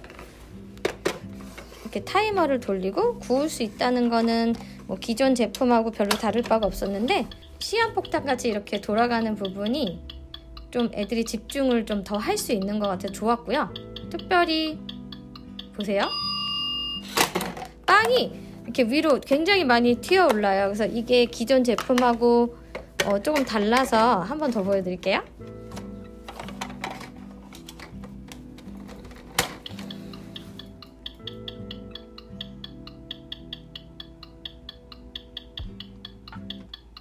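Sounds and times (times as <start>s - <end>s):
soft background music: 0.0s - 37.0s.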